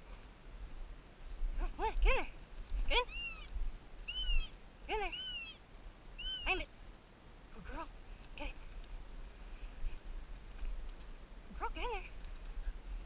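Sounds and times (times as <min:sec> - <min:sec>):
dog yipping and whining: 0:03.0 - 0:03.5, 0:04.1 - 0:04.5, 0:05.1 - 0:05.6, 0:06.2 - 0:06.5.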